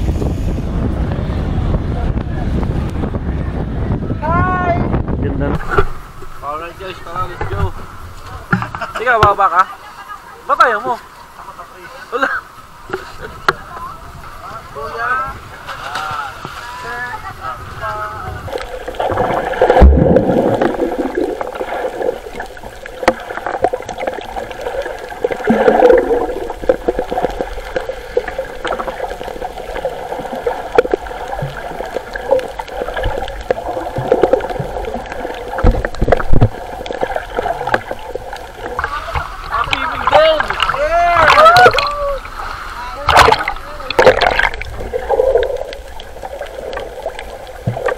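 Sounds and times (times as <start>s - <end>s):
water splashing and bubbling: 12.6s - 47.9s
loud splash: 18.5s - 42.4s, 43.0s - 47.9s.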